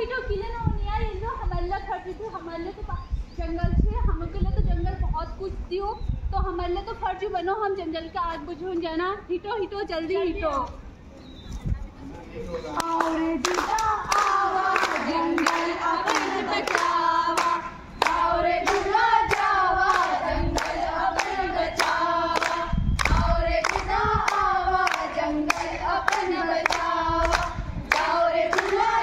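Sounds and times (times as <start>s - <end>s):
hands clapping in time: 12.8s - 29.0s
women singing together: 12.8s - 29.0s.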